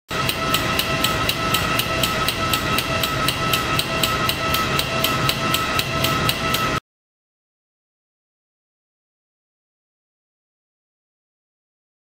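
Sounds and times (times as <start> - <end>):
solenoid valve clicking rapidly: 0.1 - 6.8
steady high whine: 0.1 - 6.8.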